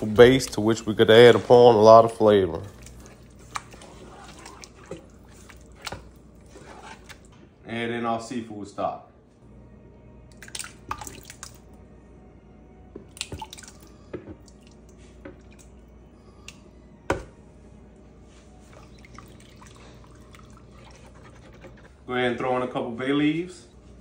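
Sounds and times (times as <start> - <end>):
liquid pouring and splashing: 2.6 - 7.3, 10.4 - 11.6, 13.2 - 15.7, 18.6 - 22.0.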